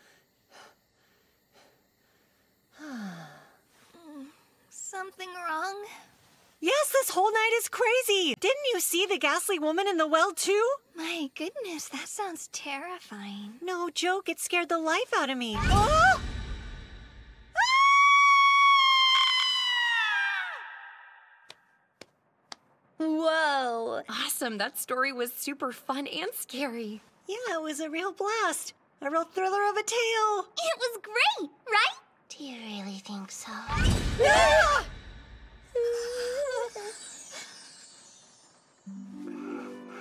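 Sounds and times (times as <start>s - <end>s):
woman sighing: 2.8s - 4.5s
girl screaming: 15.7s - 16.2s, 17.6s - 21.2s, 34.2s - 34.9s.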